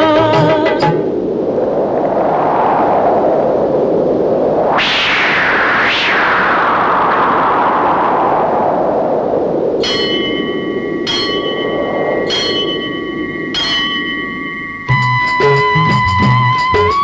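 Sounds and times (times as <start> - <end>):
rushing swell of noise: 0.4 - 17.0
bell ringing: 9.8 - 16.9.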